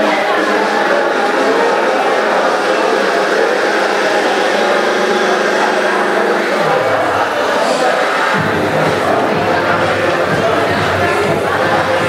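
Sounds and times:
crowd chatter: 0.0 - 12.0
music in a large hall: 0.0 - 12.0.

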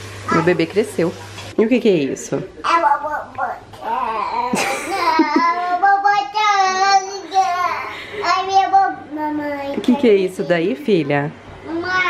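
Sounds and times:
toddler vocalizing sing-song: 2.7 - 4.6, 5.2 - 9.9.

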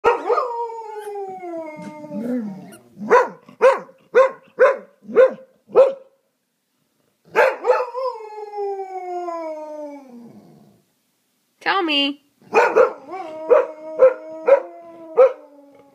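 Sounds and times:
dog yelping barks: 0.0 - 0.5, 2.7 - 6.1, 7.3 - 7.9, 12.5 - 14.6
dog howling: 0.1 - 2.8, 12.8 - 15.9.

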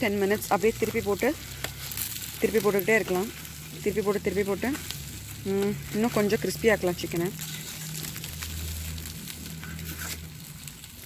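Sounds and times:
faint crackles: 0.0 - 11.0
low steady hum: 0.0 - 11.0
meat sizzling on grill: 0.0 - 11.0.

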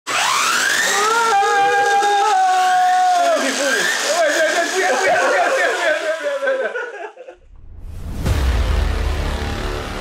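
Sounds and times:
electric motor whining: 0.1 - 6.2.

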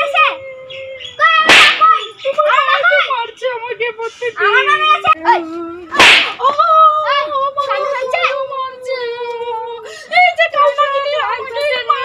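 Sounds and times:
loud sharp smack: 1.4 - 1.9, 6.0 - 6.4.

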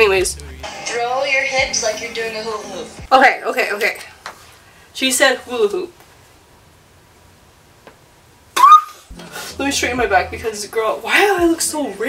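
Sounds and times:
woman squealing: 8.6 - 9.1.

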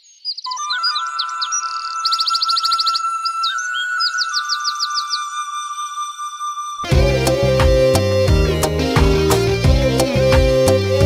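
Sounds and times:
songbirds chirping: 0.0 - 6.1
steady high musical note: 0.6 - 11.0.

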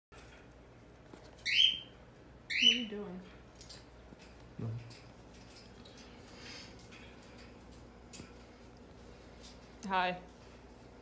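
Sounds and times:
cockatiel shrill calls: 1.4 - 1.9.

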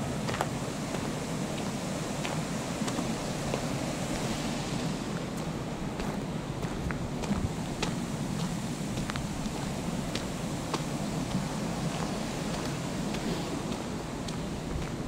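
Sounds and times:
wind on microphone: 0.0 - 15.0.

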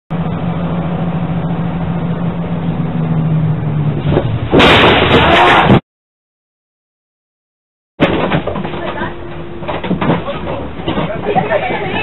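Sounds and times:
bus engine and road drone: 0.1 - 5.8, 8.0 - 12.0.

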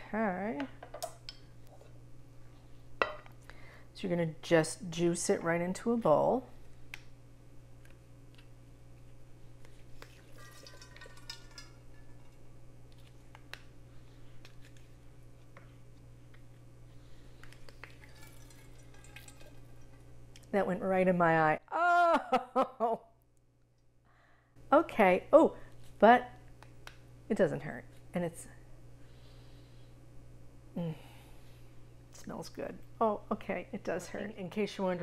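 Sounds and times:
low steady hum: 0.0 - 35.0
juice dripping into metal bowl: 10.0 - 12.1, 17.4 - 20.5.

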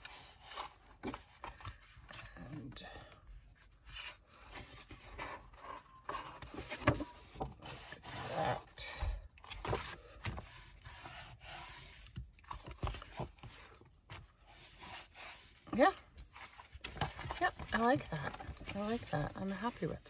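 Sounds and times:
paper rustling: 9.5 - 20.0.

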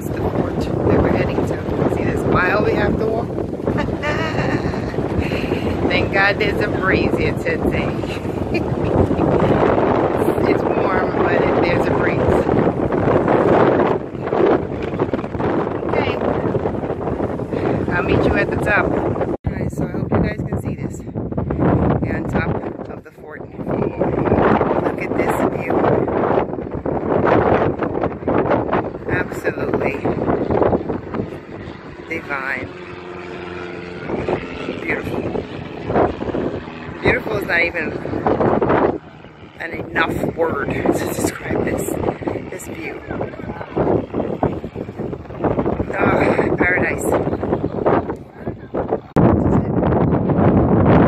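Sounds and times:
people talking: 0.0 - 12.5, 15.9 - 16.5, 17.6 - 18.9, 19.5 - 21.0, 22.0 - 24.1, 24.8 - 25.9, 29.0 - 30.2, 32.0 - 32.7, 34.6 - 35.3, 37.0 - 38.0, 39.6 - 43.8, 45.8 - 47.3
steady pitched hum: 0.0 - 51.0
wind buffeting microphone: 0.0 - 51.0.

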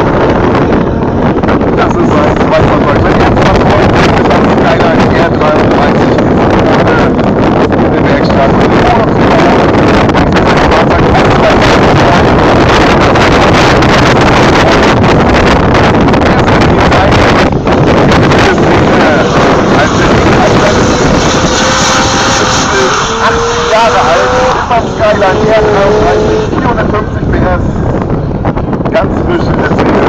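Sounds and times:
car engine at high revs: 0.0 - 29.0
distant race car engines: 0.0 - 30.0
wind on microphone: 0.0 - 30.0.

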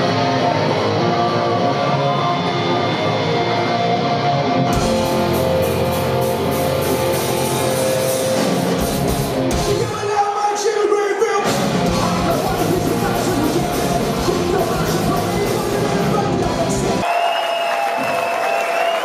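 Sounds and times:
electric guitar: 0.0 - 10.0, 11.4 - 17.0
punk rock band playing: 0.0 - 10.7, 11.4 - 17.0.

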